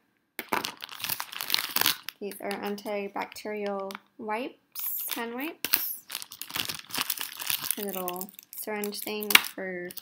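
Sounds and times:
plastic wrapper crinkling: 0.4 - 4.0, 4.8 - 10.0.

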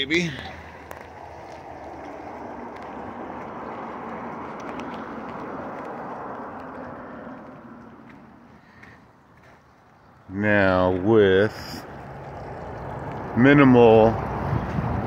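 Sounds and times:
running water rushing: 10.6 - 15.0.

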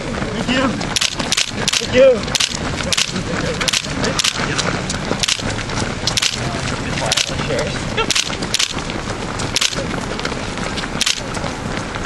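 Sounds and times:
running footsteps on asphalt: 0.0 - 12.0.

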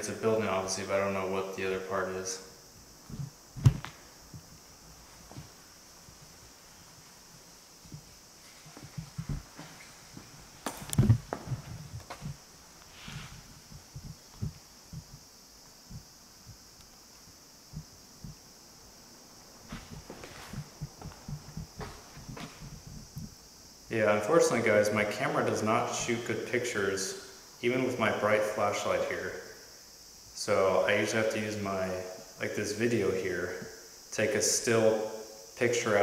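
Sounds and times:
steady hiss: 0.0 - 36.0
faint footsteps: 2.7 - 18.5, 19.4 - 23.4.

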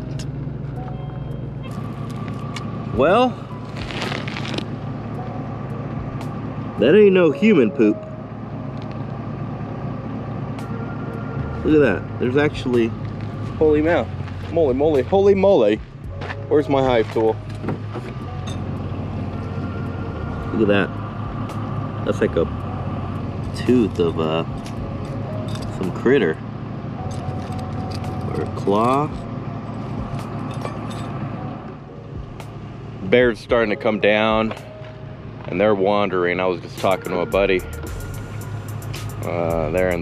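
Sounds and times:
road noise: 0.0 - 40.0
truck engine hum: 0.0 - 40.0.

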